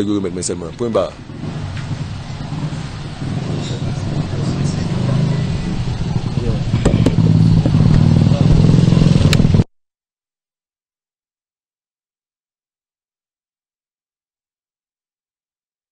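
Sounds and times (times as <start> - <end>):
vehicle engine humming: 0.0 - 9.7.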